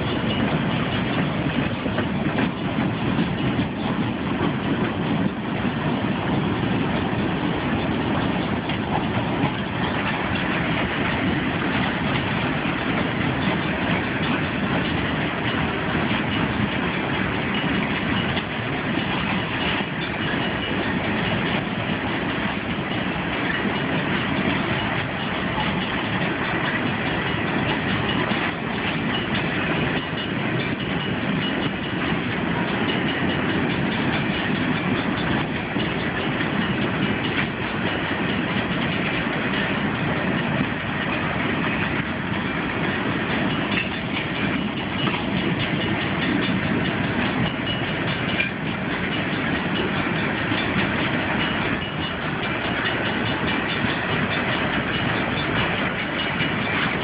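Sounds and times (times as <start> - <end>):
freight train wheels on rails: 0.0 - 57.0.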